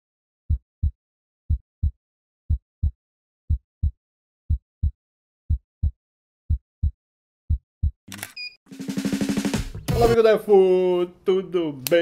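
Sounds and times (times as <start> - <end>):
low thumps like heartbeat: 0.5 - 8.0
music: 8.7 - 10.3.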